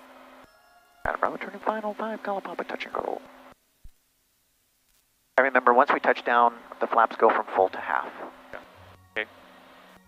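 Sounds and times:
faint low hum and hiss: 0.0s - 10.0s.

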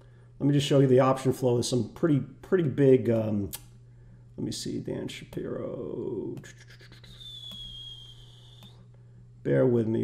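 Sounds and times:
faint high-pitched whine: 0.0s - 10.0s.

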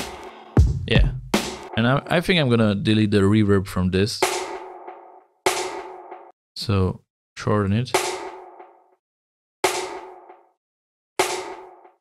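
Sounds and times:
snare drum crack: 4.2s - 4.6s, 5.5s - 6.0s, 8.0s - 8.4s, 9.6s - 10.1s, 11.2s - 11.7s.

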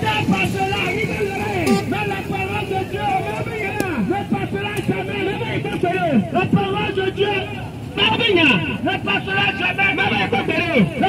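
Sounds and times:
traffic: 0.0s - 11.0s
voices talking and calling: 0.0s - 11.0s.

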